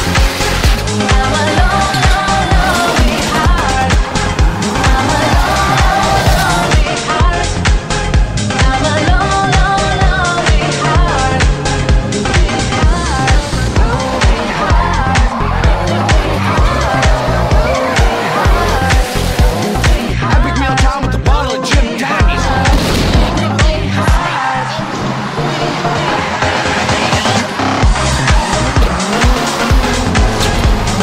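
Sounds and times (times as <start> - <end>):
tyres squealing: 0.0 - 21.4, 22.0 - 31.0
car engine revving: 0.0 - 31.0
dance music with steady beat: 0.0 - 31.0.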